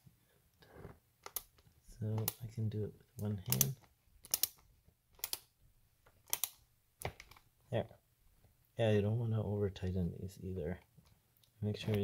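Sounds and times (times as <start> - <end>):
ratcheting screwdriver clicking: 3.5 - 4.6, 5.2 - 5.4.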